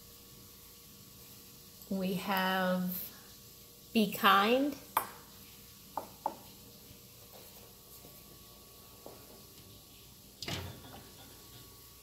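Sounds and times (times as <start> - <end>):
mugs clinking together: 5.0 - 5.2.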